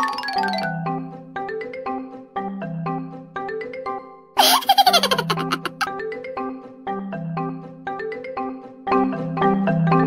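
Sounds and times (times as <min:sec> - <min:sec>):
light marimba music: 0:00.0 - 0:04.0
baby giggling: 0:04.4 - 0:05.9.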